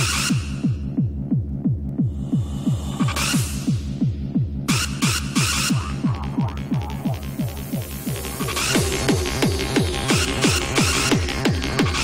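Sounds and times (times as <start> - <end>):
heavy kick drum: 0.6 - 4.7.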